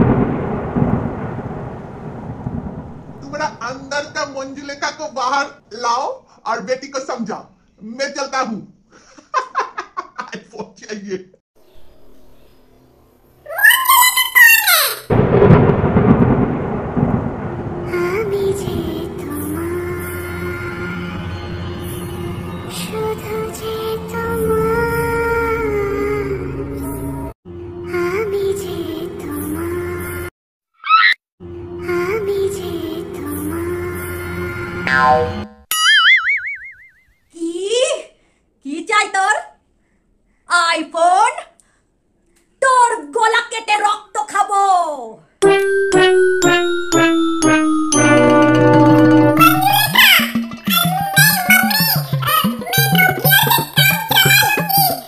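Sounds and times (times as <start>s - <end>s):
thunder crash rumbling: 0.0s - 4.4s, 15.1s - 20.6s
cartoon boing: 34.9s - 37.1s, 49.4s - 54.9s.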